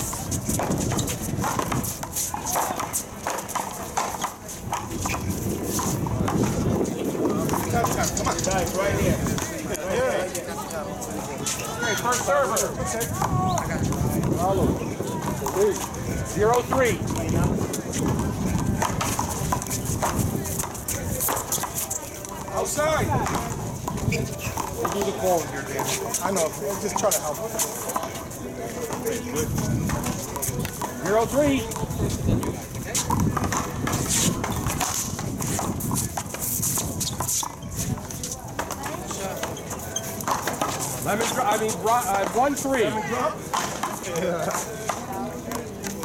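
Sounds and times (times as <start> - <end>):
people talking: 0.0 - 46.0.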